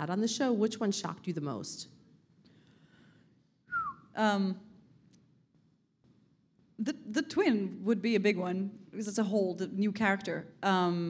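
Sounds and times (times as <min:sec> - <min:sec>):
woman whistling falling pitch: 0:03.7 - 0:04.1.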